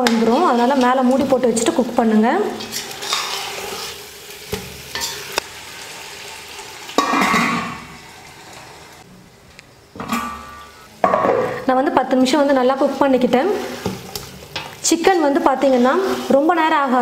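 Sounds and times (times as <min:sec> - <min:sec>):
gravy sizzling: 0:00.0 - 0:09.1, 0:09.9 - 0:17.0
metal ladle stirring and scraping pot: 0:02.4 - 0:04.1, 0:04.9 - 0:05.2, 0:12.8 - 0:16.5.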